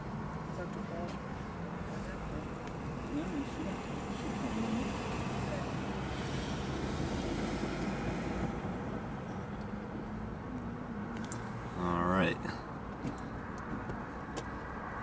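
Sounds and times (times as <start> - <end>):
hiss of cars on road: 1.8 - 9.2
vehicle passing: 1.9 - 10.2.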